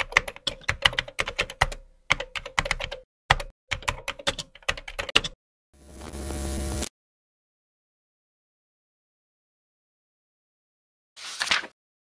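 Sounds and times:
computer keyboard typing: 0:00.0 - 0:05.4.

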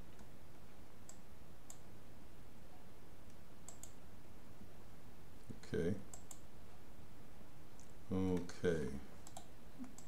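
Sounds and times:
steady low background noise: 0:00.0 - 0:10.0
computer mouse clicking: 0:00.1 - 0:00.3, 0:01.0 - 0:01.8, 0:03.3 - 0:04.0, 0:06.1 - 0:06.4, 0:09.2 - 0:10.0.

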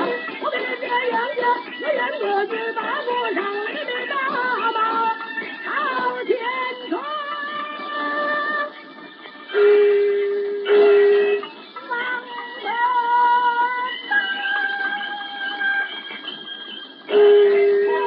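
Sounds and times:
opera music from old record: 0:00.0 - 0:18.0.

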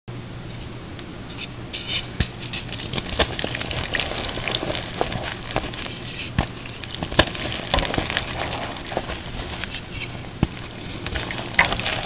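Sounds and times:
low steady hum: 0:00.1 - 0:12.0
wet chalk crackling and crunching: 0:02.2 - 0:12.0.

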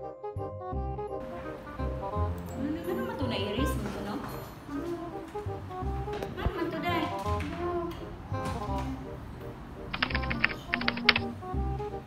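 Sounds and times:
background music: 0:00.0 - 0:12.0
rapid laptop keystrokes: 0:09.9 - 0:11.3.

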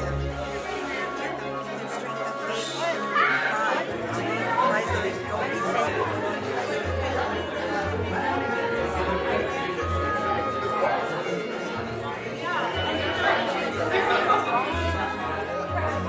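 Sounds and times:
background music: 0:00.0 - 0:16.0
indistinct chatter of voices: 0:00.0 - 0:16.0.

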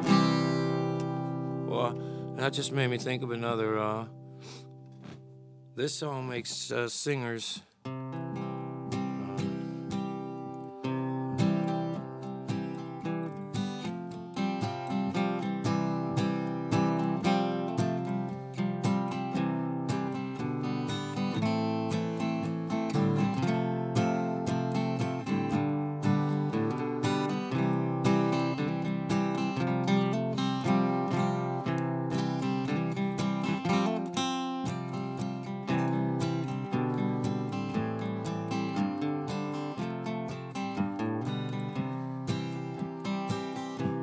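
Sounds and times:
acoustic guitar strummed: 0:00.0 - 0:06.7, 0:07.8 - 0:44.0.

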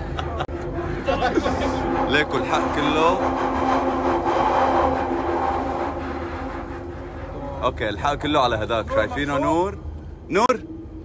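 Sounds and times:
train whine: 0:00.0 - 0:11.0
underground train rumble: 0:00.0 - 0:11.0.

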